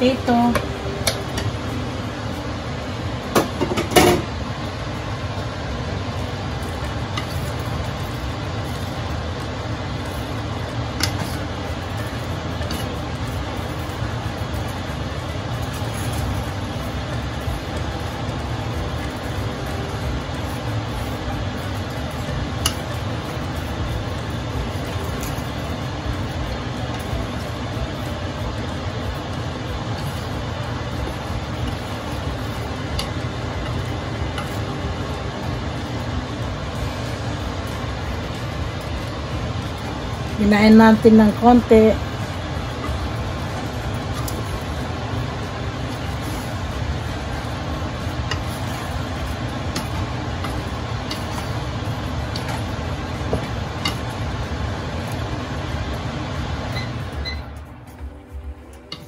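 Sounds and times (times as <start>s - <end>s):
wooden spatula stirring: 4.4s - 59.0s.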